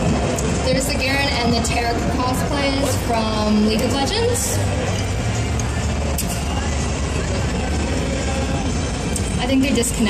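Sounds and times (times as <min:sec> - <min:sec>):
faint voices: 0:00.0 - 0:10.0
low hum of hall room noise: 0:00.0 - 0:10.0.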